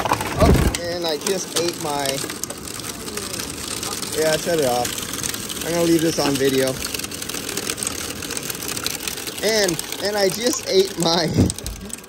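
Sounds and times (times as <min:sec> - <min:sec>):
car engine idling with cooling fans: 0:00.0 - 0:12.0
faint irregular ticks: 0:00.7 - 0:12.0
person speaking: 0:05.6 - 0:06.9, 0:09.4 - 0:12.0.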